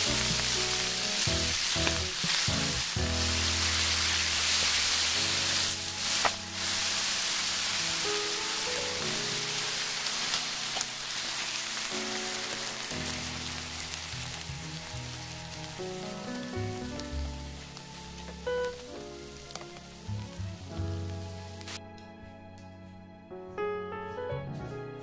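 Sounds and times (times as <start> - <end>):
pancakes sizzling in oil: 0.0 - 21.8
background music: 0.0 - 25.0.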